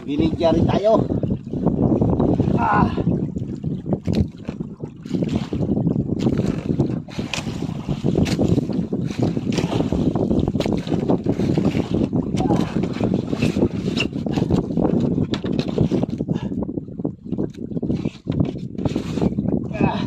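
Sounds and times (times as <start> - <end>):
rushing water: 0.0 - 15.1
boat rumble: 0.0 - 20.0
wind buffeting microphone: 0.0 - 20.0.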